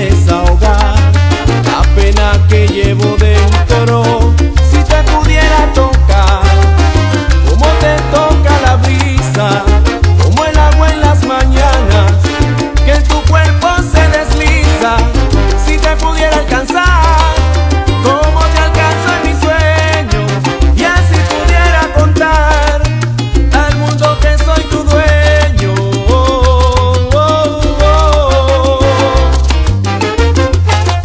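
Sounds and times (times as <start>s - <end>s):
salsa band playing: 0.0s - 31.0s.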